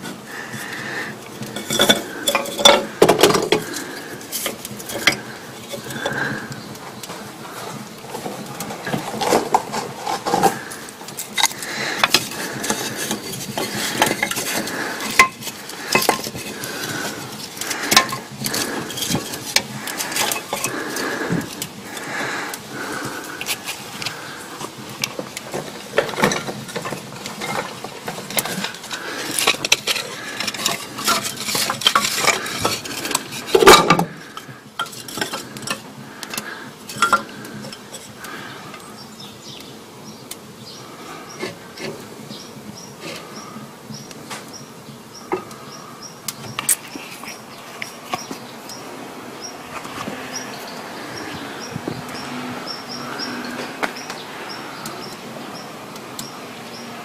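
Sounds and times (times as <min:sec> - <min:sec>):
metal and wood clinks and knocks: 0:00.0 - 0:06.5, 0:08.1 - 0:38.8.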